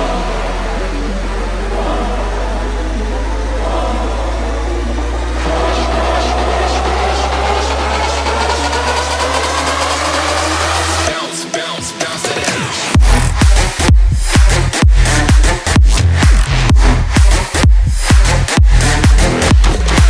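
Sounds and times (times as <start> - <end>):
deep bass drone: 0.0 - 11.1, 13.0 - 20.0
rising synth sweep: 0.0 - 11.2.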